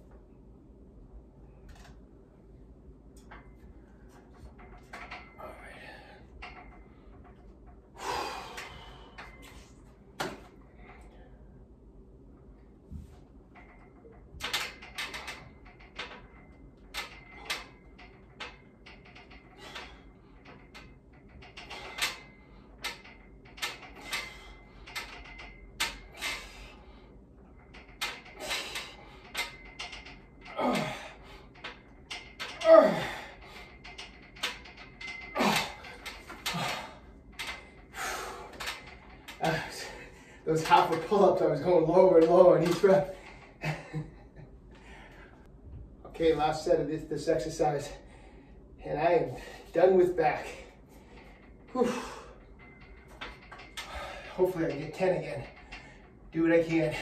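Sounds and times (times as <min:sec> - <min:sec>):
man breathing hard: 0:07.9 - 0:09.8, 0:26.0 - 0:27.2, 0:35.1 - 0:40.5, 0:44.7 - 0:45.4, 0:50.7 - 0:52.9, 0:53.6 - 0:54.4
man grunting: 0:30.5 - 0:31.1, 0:32.6 - 0:33.2
long strained vocal sound: 0:30.5 - 0:31.2.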